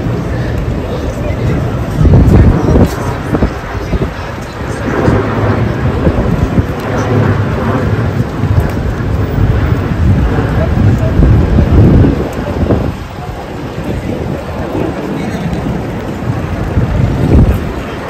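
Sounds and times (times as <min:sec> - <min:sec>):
rain pattering on umbrella: 0:00.0 - 0:18.0
wind rumbling on microphone: 0:00.0 - 0:18.0.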